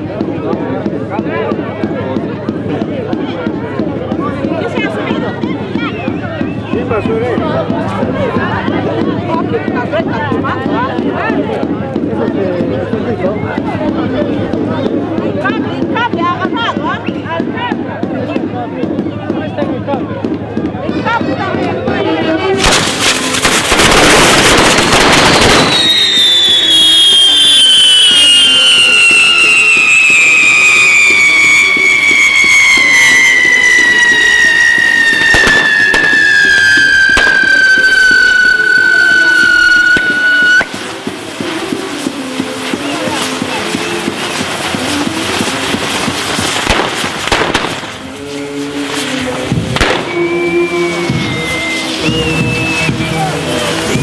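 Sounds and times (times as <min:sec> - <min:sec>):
fireworks hissing and crackling: 0:00.0 - 0:54.0
whistle gliding down in pitch: 0:25.6 - 0:40.8, 0:49.8 - 0:54.0
music: 0:37.4 - 0:54.0.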